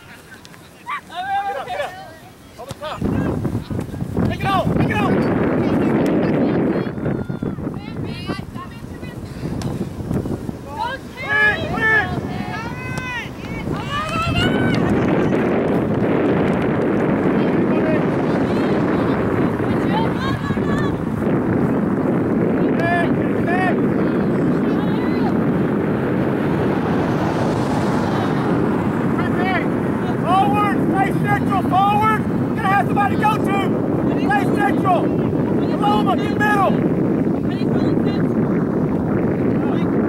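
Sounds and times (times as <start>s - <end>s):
players shouting and calling: 0.0s - 38.4s
wind noise on microphone: 2.8s - 40.0s.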